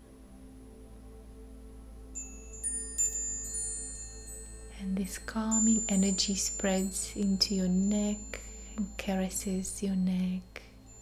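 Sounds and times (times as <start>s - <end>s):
soft background music: 0.0s - 11.0s
metal wind chime ringing: 2.2s - 9.8s, 10.8s - 11.0s.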